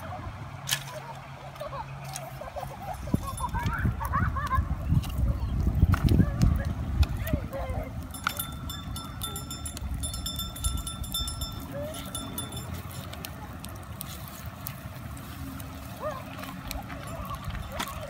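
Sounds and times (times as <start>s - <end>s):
wood fire crackling and popping: 3.0s - 18.0s
river running: 6.8s - 18.0s.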